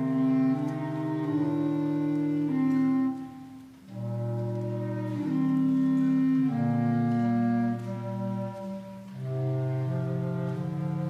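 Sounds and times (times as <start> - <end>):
bass clarinets playing low chords: 0.0 - 11.0.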